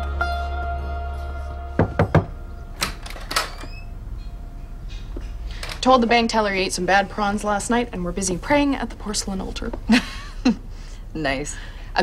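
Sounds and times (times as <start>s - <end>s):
sitar music with drone: 0.0s - 2.8s.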